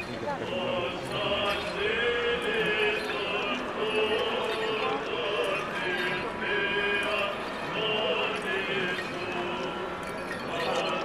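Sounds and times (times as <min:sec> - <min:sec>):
dense crowd noise: 0:00.0 - 0:11.0
men chanting a hymn: 0:00.4 - 0:09.8.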